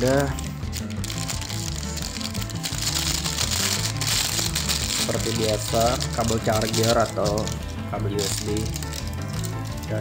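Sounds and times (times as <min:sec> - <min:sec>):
background music with steady beat: 0:00.0 - 0:10.0
plastic bag rustling: 0:00.0 - 0:10.0.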